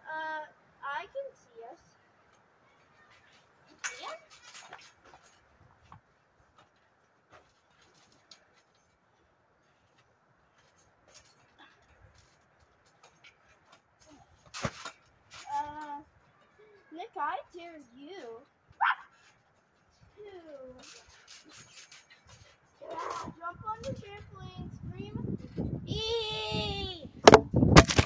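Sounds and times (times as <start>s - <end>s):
child's voice: 0.0s - 1.9s, 15.4s - 19.0s, 20.1s - 20.9s, 22.8s - 27.2s.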